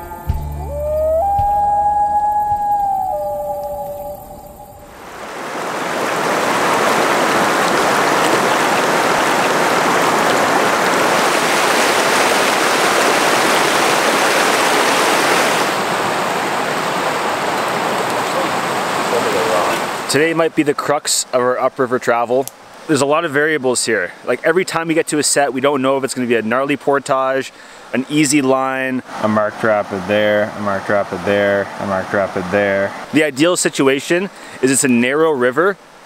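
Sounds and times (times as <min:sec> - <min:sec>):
intro tune held notes: 0:00.0 - 0:05.0
river rushing over rocks: 0:05.0 - 0:20.2.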